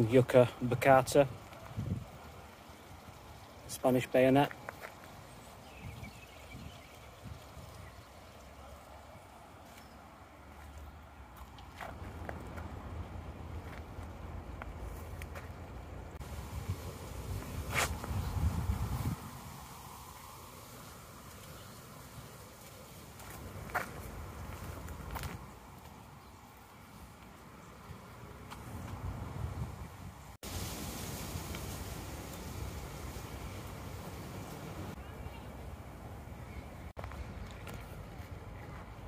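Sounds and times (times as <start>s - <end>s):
wind rumbling on microphone: 1.3s - 2.5s, 5.3s - 8.1s, 11.9s - 21.2s, 28.6s - 37.4s
footsteps on path: 4.4s - 5.7s, 9.6s - 15.8s, 17.4s - 18.3s, 22.6s - 29.1s, 37.0s - 39.0s.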